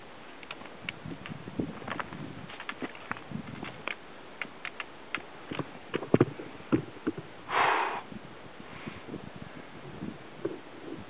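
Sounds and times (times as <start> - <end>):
short sniff: 7.5 - 8.1.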